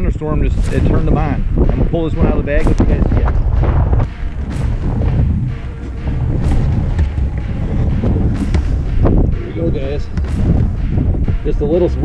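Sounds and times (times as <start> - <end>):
wind buffeting microphone: 0.0 - 12.0
sharp knocks: 0.6 - 12.0.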